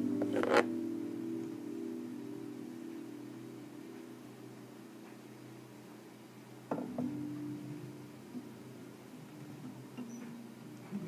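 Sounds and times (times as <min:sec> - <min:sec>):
faint sustained string tones: 0:00.0 - 0:11.0
acoustic guitar notes picked: 0:06.7 - 0:11.0.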